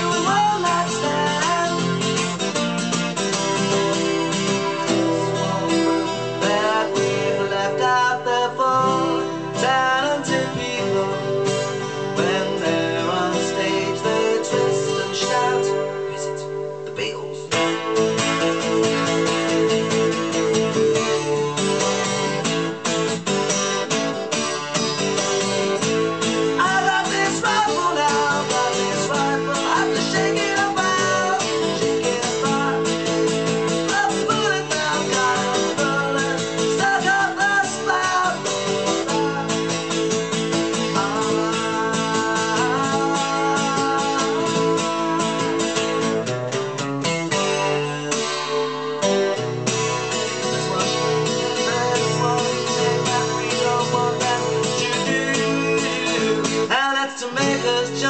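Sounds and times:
man singing: 0.0s - 18.0s, 23.8s - 58.0s
acoustic guitar strumming: 0.0s - 58.0s.

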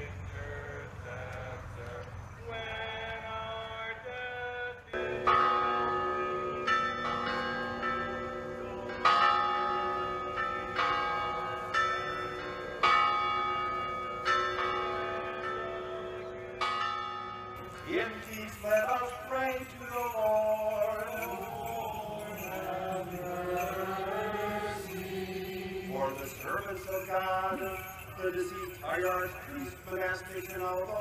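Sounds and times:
chanted singing: 0.0s - 9.2s, 14.9s - 16.8s, 17.7s - 31.0s
church bells ringing: 4.8s - 31.0s.

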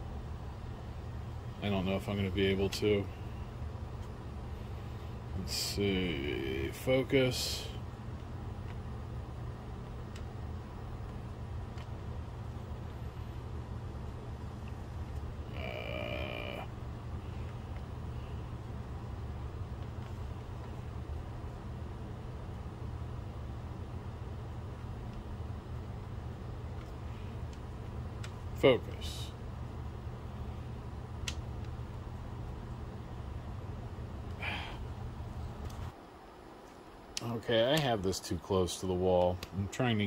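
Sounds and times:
projector cooling fans humming: 0.0s - 40.0s.

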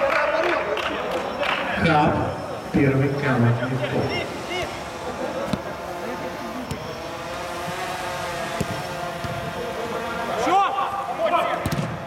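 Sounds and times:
faint players' voices: 0.0s - 12.0s
steady background hum: 0.0s - 12.0s
football kick thuds: 8.5s - 9.5s, 11.6s - 12.0s.

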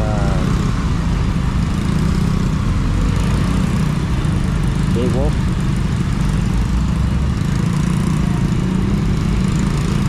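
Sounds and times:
road noise: 0.0s - 10.0s
scooter engine running: 1.4s - 10.0s.

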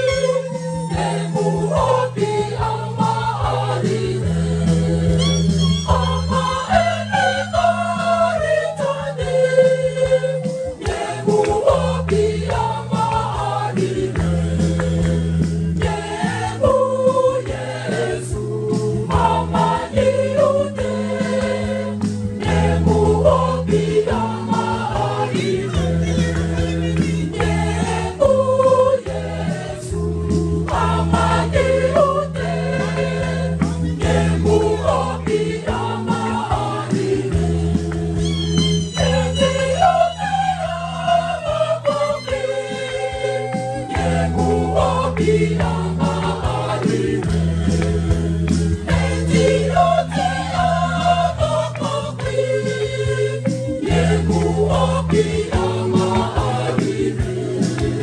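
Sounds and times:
choir singing a hymn: 0.0s - 58.0s
held bass notes: 0.0s - 58.0s
regular percussive beat: 0.0s - 58.0s.

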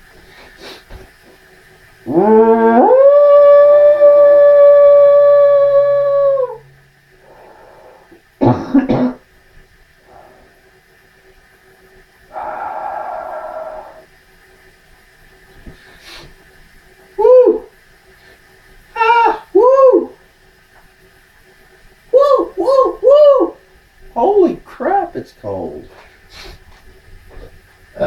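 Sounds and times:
man's long loud ooh: 2.0s - 8.2s, 12.3s - 14.1s, 17.2s - 17.7s, 19.0s - 20.2s, 22.1s - 23.6s
breathy noise: 7.2s - 8.2s, 12.3s - 14.0s
short cough: 8.4s - 9.2s.

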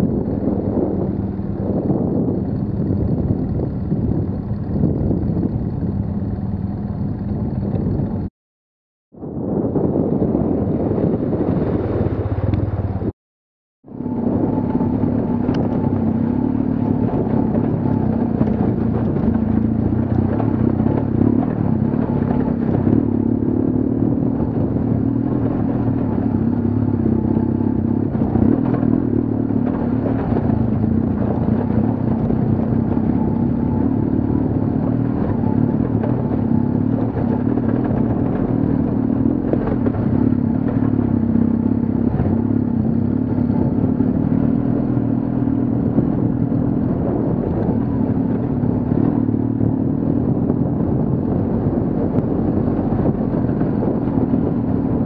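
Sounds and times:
motorcycle engine running under load: 0.0s - 8.3s, 13.9s - 55.0s.

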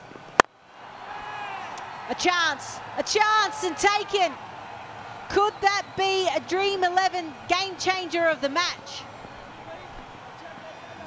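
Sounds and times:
field microphone background noise: 0.0s - 11.0s.

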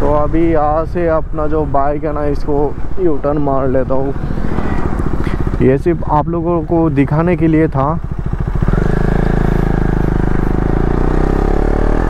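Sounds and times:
motorcycle engine accelerating: 3.9s - 12.0s.

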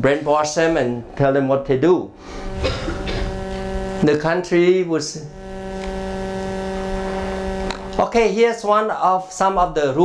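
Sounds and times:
man humming: 2.4s - 4.1s, 5.2s - 8.1s.

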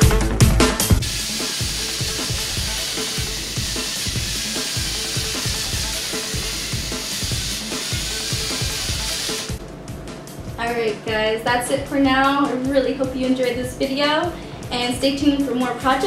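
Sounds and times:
toy robot motor whirring: 1.0s - 9.6s.

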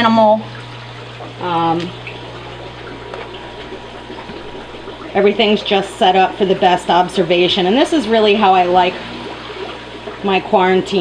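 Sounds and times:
low hum: 0.0s - 10.6s
running water from aquarium pumps: 0.0s - 11.0s.

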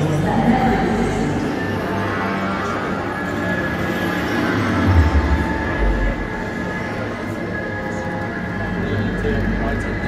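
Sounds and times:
low rumbling drone: 0.0s - 7.7s.

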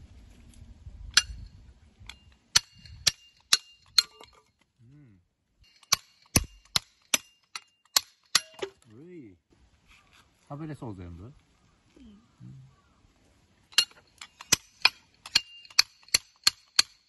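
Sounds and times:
hatchet chopping wood: 5.7s - 8.7s, 13.8s - 17.0s.

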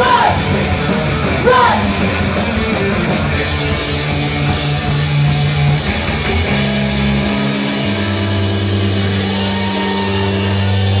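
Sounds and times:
distorted electric guitars and bass: 0.0s - 11.0s.

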